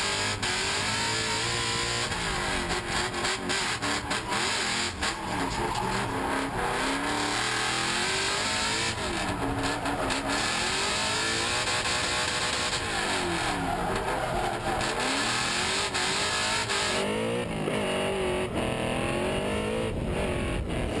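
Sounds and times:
car engine revving hard: 0:00.0 - 0:21.0.

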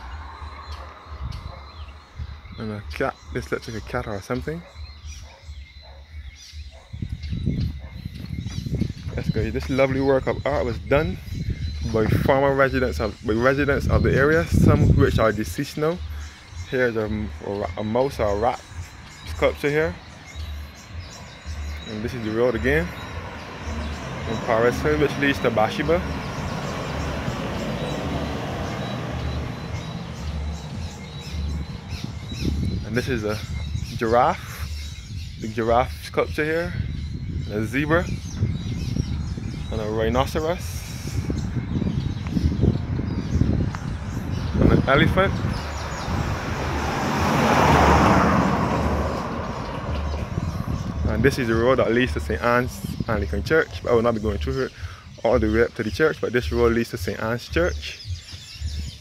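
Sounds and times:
birds chirping: 0:00.0 - 0:59.0
pickup truck driving past: 0:22.7 - 0:32.5, 0:45.4 - 0:51.2.

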